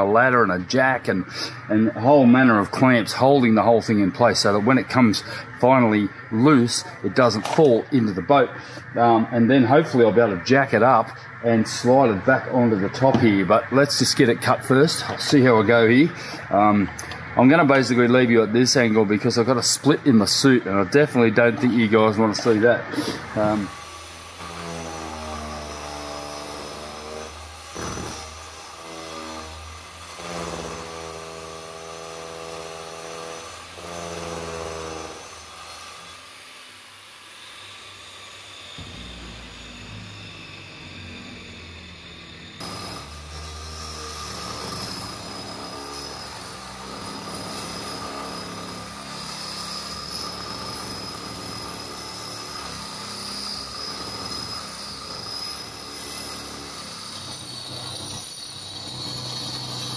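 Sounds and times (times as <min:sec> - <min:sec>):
angle grinder cutting fiberglass: 0:00.0 - 0:59.9.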